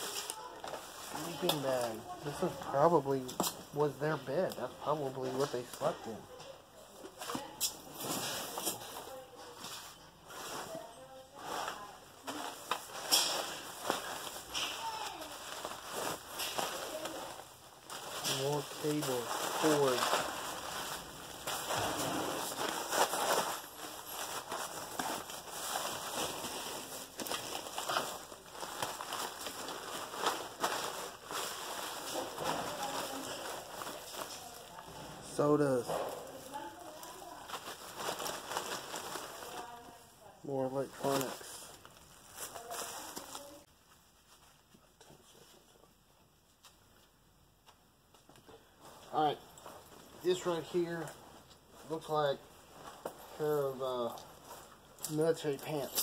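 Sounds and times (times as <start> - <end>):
plastic bags rustling: 0.0 - 44.7, 48.8 - 56.0
items clicking and knocking: 11.6 - 39.7.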